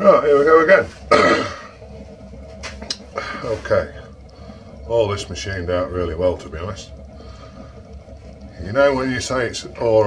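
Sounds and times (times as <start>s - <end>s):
man coughing: 1.1s - 1.7s
man burping vocal sound: 1.1s - 1.8s.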